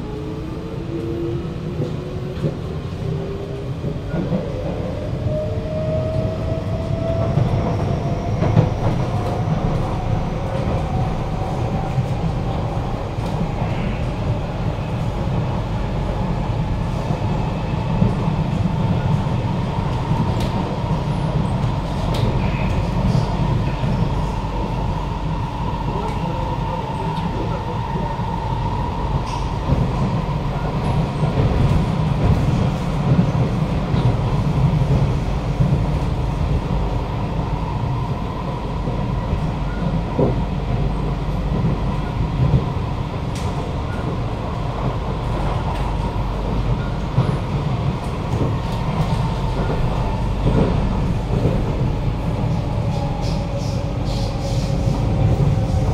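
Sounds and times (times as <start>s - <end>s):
train wheels rumbling on track: 0.0s - 55.9s.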